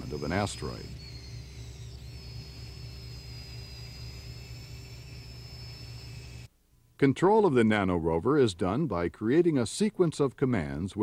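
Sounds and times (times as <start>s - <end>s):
electric motors whirring: 0.0s - 6.5s.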